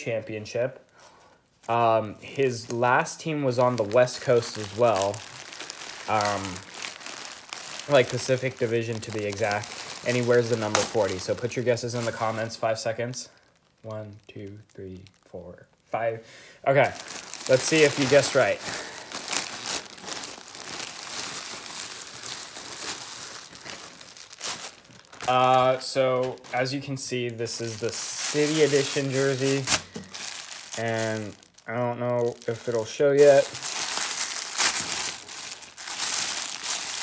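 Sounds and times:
plastic bags crinkling and rustling: 0:01.6 - 0:15.8, 0:16.7 - 0:37.0.

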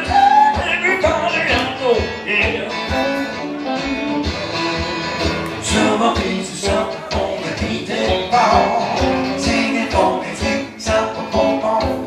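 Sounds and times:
blues acoustic guitar: 0:00.0 - 0:12.0.

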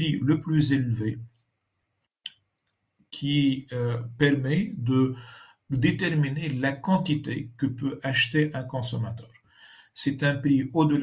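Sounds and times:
man's voice: 0:00.0 - 0:01.2, 0:03.2 - 0:09.3, 0:10.0 - 0:11.0.

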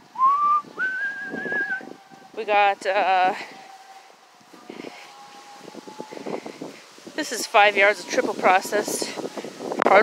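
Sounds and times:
person whistling: 0:00.2 - 0:01.9.

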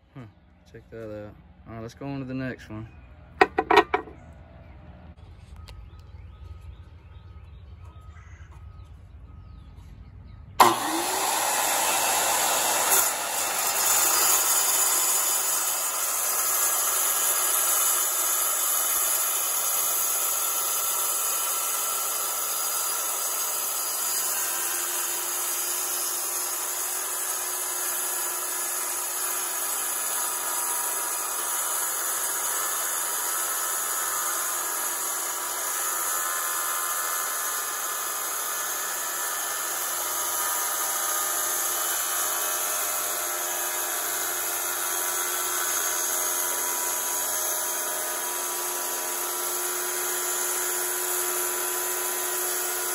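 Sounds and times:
saw blade cutting stone: 0:03.4 - 0:04.2, 0:10.6 - 0:52.9
tile saw motor whining: 0:03.4 - 0:04.3, 0:10.6 - 0:52.9.

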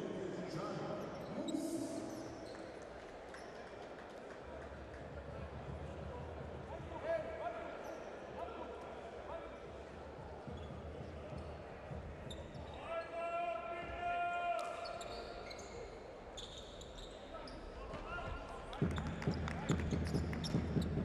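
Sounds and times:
shoe squeaks: 0:14.8 - 0:17.8.

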